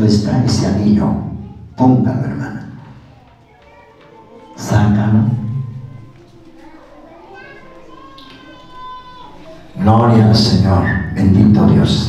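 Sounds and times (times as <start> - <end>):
faint background voices: 1.0 - 12.0.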